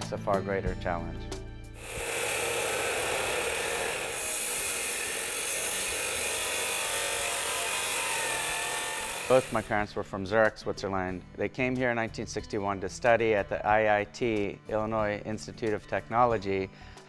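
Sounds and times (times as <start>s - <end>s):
music: 0.0s - 17.0s
chop saw grinding through metal: 1.8s - 9.8s.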